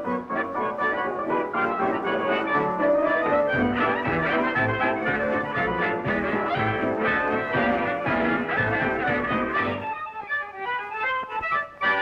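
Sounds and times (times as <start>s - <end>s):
band playing: 0.0s - 12.0s.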